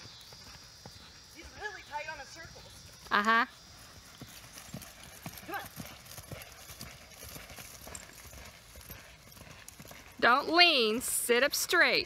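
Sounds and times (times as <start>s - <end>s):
horse hoofbeats cantering: 0.0s - 12.0s.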